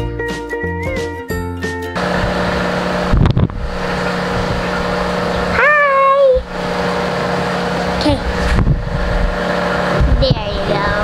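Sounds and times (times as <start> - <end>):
background music: 0.0 - 2.0.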